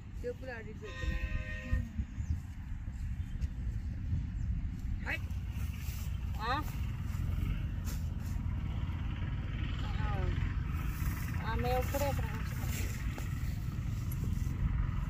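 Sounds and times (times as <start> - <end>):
steady low rumble: 0.0 - 15.0.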